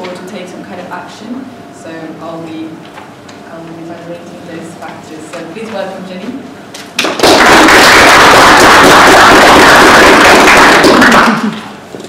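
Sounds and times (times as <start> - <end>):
audience applauding: 7.2 - 11.7.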